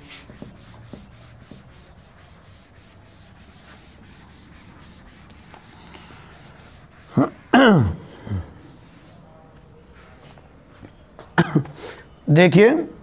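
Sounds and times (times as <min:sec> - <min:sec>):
duster rubbing chalkboard: 0:00.0 - 0:07.5, 0:08.7 - 0:09.3.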